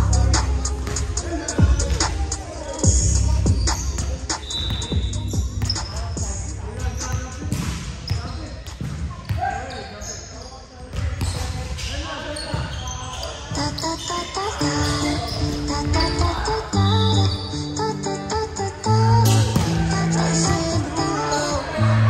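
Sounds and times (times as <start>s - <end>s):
players calling out: 0.0s - 10.5s, 11.2s - 22.0s
volleyball hitting gym floor: 7.1s - 9.5s, 19.2s - 19.9s.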